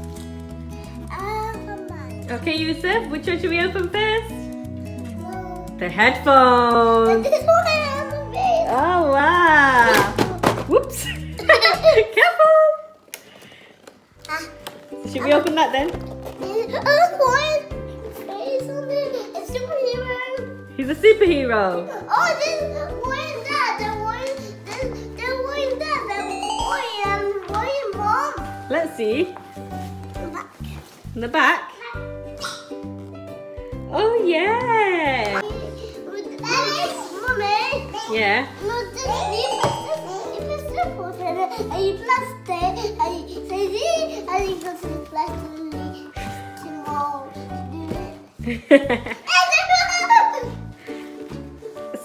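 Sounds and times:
child's excited vocal sound: 22.1 - 28.4, 31.8 - 32.8, 49.2 - 50.6
child talking excitedly: 49.3 - 50.2.

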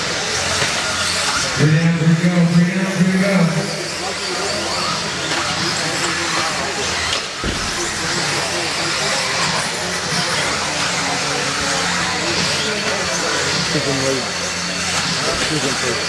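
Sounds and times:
toy cars racing on dirt: 0.0 - 16.0
voices in a hall: 0.0 - 16.0.

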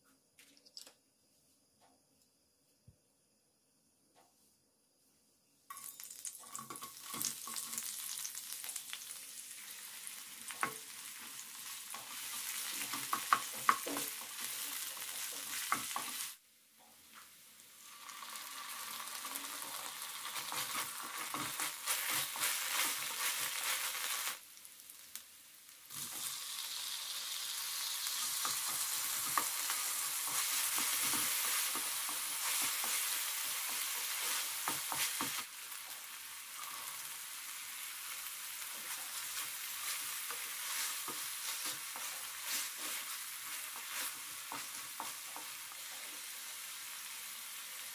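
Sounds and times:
vegetables sizzling in hot oil: 5.7 - 47.9
wooden spatula scraping a pan: 20.4 - 24.3, 28.4 - 35.4, 38.9 - 46.0.

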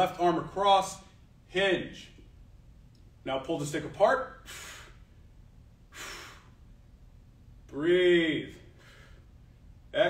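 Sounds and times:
man breathing softly: 8.7 - 9.5.

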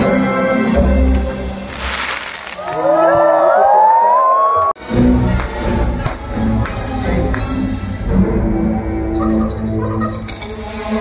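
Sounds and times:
soundtrack music with deep bass: 0.0 - 1.8, 4.8 - 11.0
crowd cheering: 2.4 - 4.8
whoops rising in pitch: 2.6 - 4.8.

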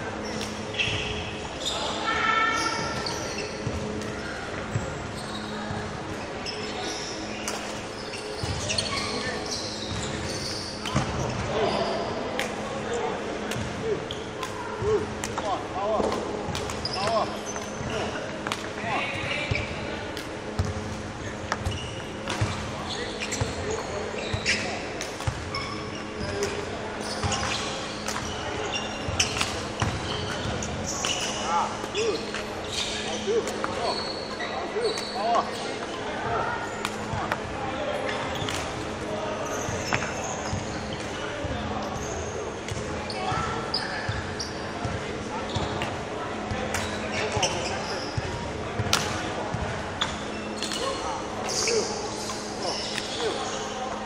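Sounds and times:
shoes squeaking on hall floor: 0.1 - 54.0.

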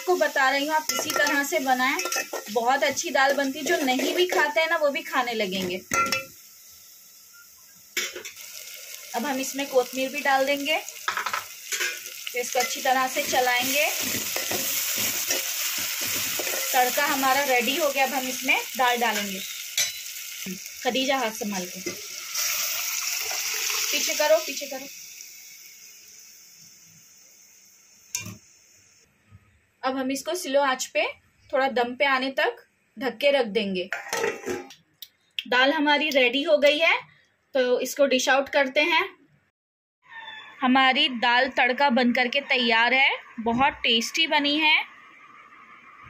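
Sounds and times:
hot oil hissing in a pan: 0.0 - 29.1
faint sizzling in pot: 0.0 - 34.9
metal utensil clinking on pot: 0.9 - 2.6, 5.9 - 6.3, 19.8 - 20.1.

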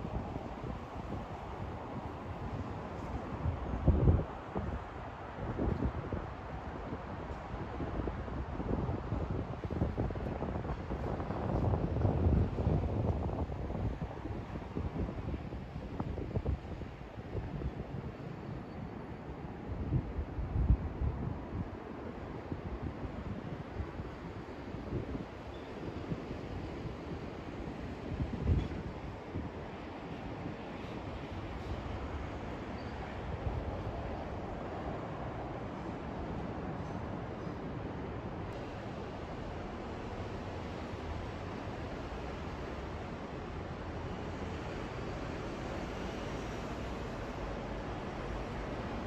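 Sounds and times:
wind buffeting microphone: 0.0 - 18.3, 19.4 - 49.0
city traffic hum: 0.0 - 49.0.

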